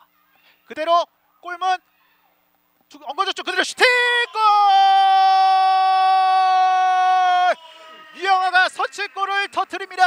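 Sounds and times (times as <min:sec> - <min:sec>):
man shouting goal: 0:03.5 - 0:08.9.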